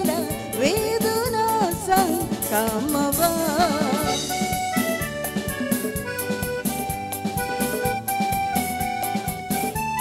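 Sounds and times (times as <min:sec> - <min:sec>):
bass guitar: 0:00.0 - 0:10.0
drums: 0:00.0 - 0:10.0
reedy keyboard melody: 0:00.0 - 0:10.0.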